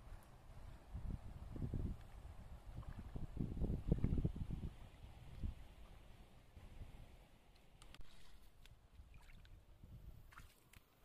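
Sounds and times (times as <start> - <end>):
water sloshing and splashing: 2.7 - 6.3, 7.7 - 11.0.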